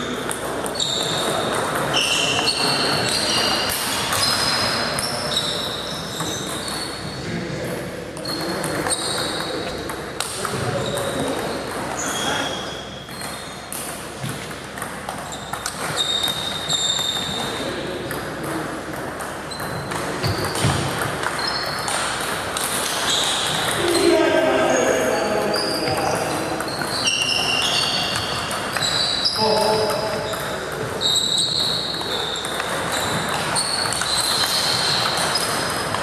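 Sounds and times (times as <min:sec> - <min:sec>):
voices in a hall: 0:00.0 - 0:36.0.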